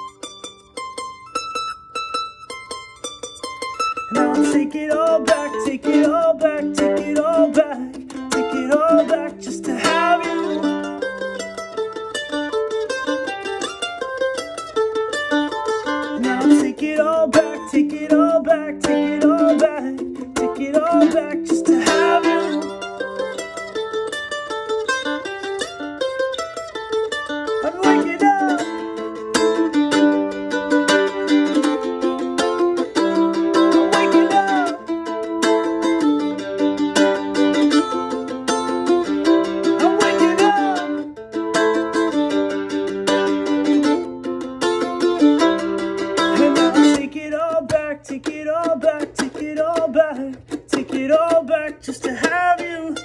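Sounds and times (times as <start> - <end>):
acoustic mandolin playing: 0.0 - 53.0.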